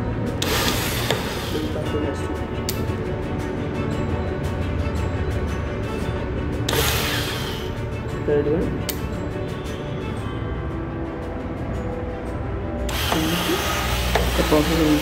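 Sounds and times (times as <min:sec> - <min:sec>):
burst of hiss: 0:00.4 - 0:01.8, 0:06.7 - 0:07.7.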